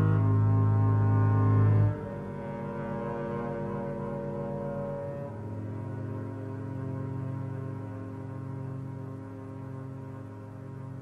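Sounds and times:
sustained low chord: 0:00.0 - 0:11.0.

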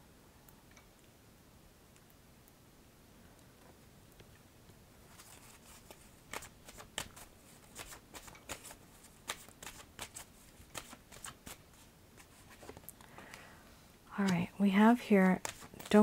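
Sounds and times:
cards being shuffled: 0:05.1 - 0:13.0, 0:15.2 - 0:16.0.

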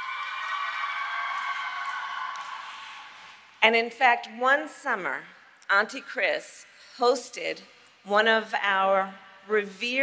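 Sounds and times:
crowd of women cheering: 0:00.0 - 0:03.4.

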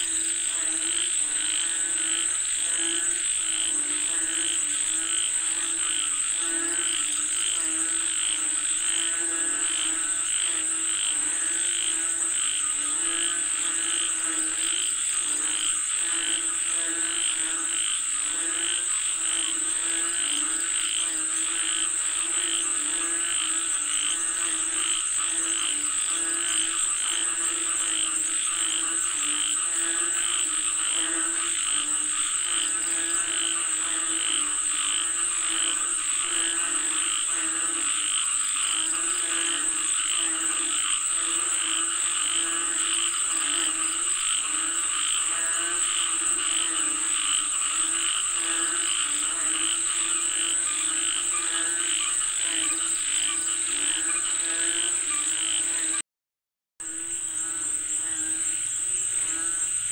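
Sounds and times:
frogs croaking: 0:00.0 - 0:56.0, 0:56.8 - 0:59.9.

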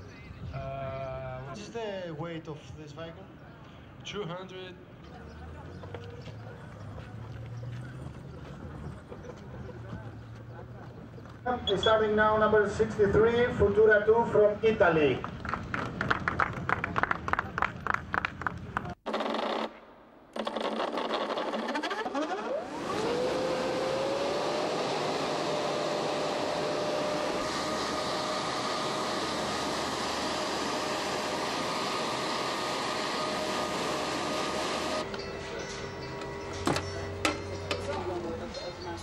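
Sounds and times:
electric motor whining: 0:20.4 - 0:37.8.

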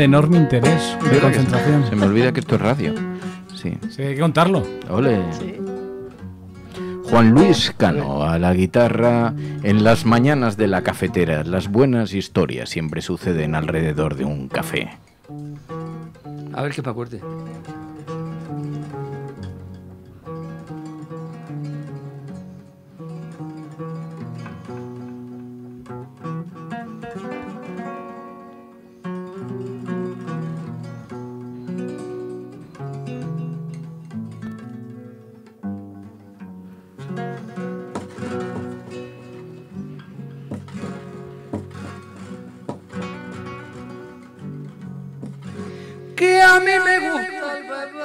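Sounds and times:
fingerstyle nylon-string guitar: 0:00.0 - 0:48.0
man singing loudly: 0:46.2 - 0:48.0.

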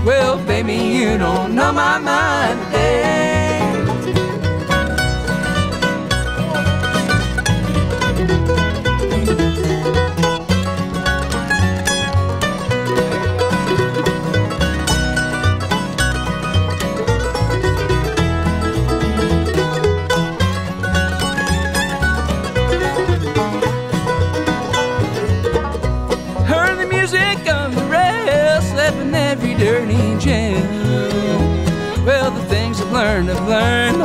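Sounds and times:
acoustic guitar: 0:00.0 - 0:34.0
banjo: 0:00.0 - 0:34.0
mandolin picking lead: 0:00.0 - 0:34.0
upright bass: 0:00.0 - 0:34.0.

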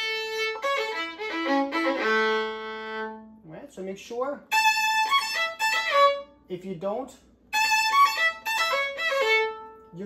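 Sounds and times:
violin descending run: 0:00.0 - 0:03.4, 0:04.5 - 0:06.4, 0:07.5 - 0:09.9.

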